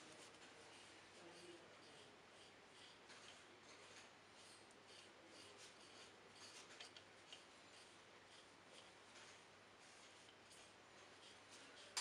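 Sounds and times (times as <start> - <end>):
pad rubbing on wood: 0.0 - 12.0
soft scrapes: 0.0 - 12.0.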